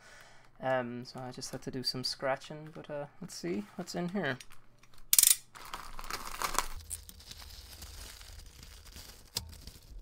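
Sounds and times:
plastic rustling and crumpling: 0:04.5 - 0:10.0
plastic bag tearing: 0:05.5 - 0:10.0.

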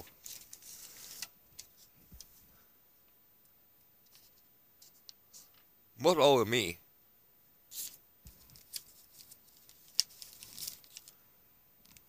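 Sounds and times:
paper rustling and crinkling: 0:00.0 - 0:02.4, 0:07.8 - 0:11.2.

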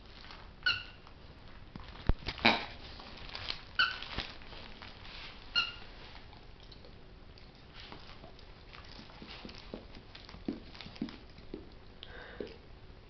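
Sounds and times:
rustling squeeze: 0:00.0 - 0:06.3
squeaky toy squeaking: 0:00.6 - 0:01.0, 0:03.8 - 0:04.0, 0:05.5 - 0:05.9.

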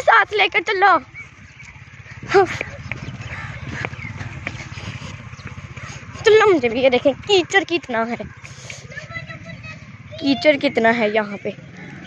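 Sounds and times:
motorcycle engine low hum: 0:00.0 - 0:12.0.

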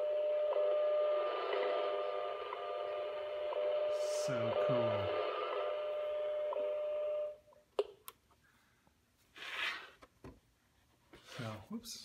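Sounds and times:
steady radio tone with ticks: 0:00.5 - 0:07.0
radio static: 0:01.2 - 0:06.5.

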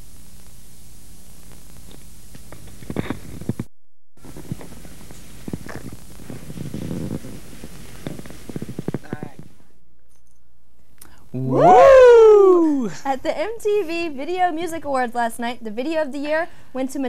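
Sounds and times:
steady hum and hiss: 0:00.0 - 0:17.0
short bursts of voices: 0:11.3 - 0:13.0.

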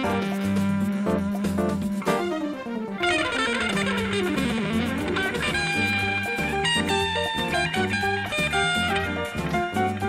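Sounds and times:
electric guitar jazz solo: 0:00.0 - 0:10.0
low bass line: 0:00.0 - 0:10.0.

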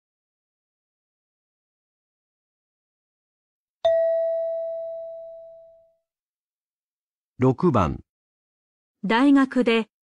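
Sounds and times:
bell-like chime: 0:03.8 - 0:06.0.

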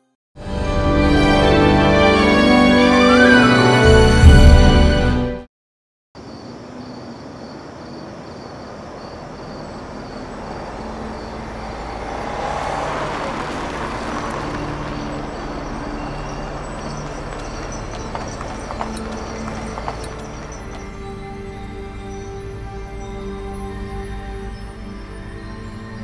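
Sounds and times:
rushing noise: 0:08.1 - 0:21.0.

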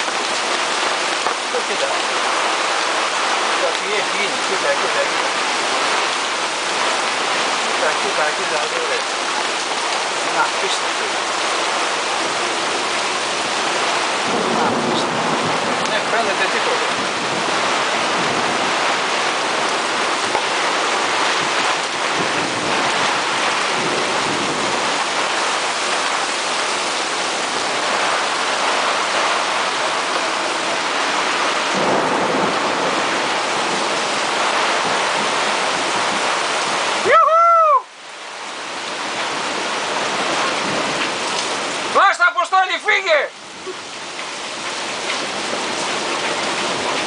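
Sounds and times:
heavy rain on canvas: 0:00.0 - 0:47.0.

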